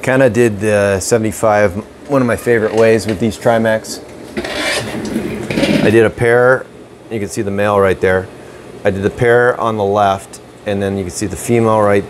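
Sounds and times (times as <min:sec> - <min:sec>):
rough rasping scrape: 0:04.3 - 0:06.0.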